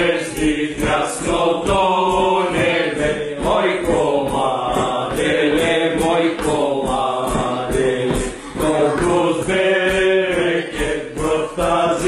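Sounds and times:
steady beat: 0.0s - 12.0s
voices singing a carol together: 0.0s - 12.0s.

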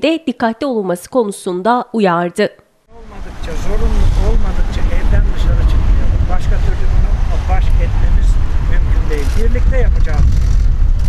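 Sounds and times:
man talking: 2.9s - 10.3s
road traffic rumble: 2.9s - 11.0s
wind on microphone: 3.0s - 11.0s.

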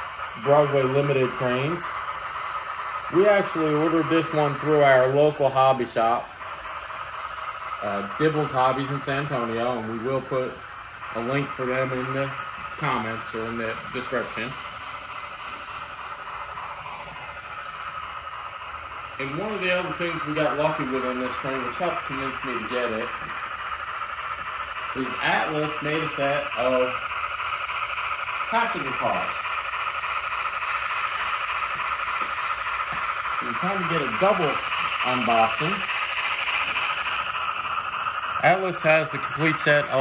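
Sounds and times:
locomotive steam hiss from small speaker: 0.0s - 40.0s
model train wheels rumbling on track: 0.0s - 40.0s.

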